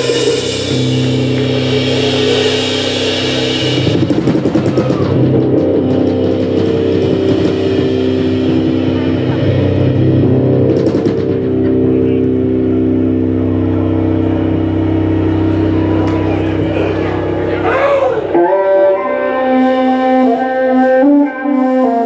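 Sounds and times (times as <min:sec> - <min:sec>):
distorted cello: 0:00.0 - 0:22.0
rock band droning chord: 0:00.0 - 0:22.0.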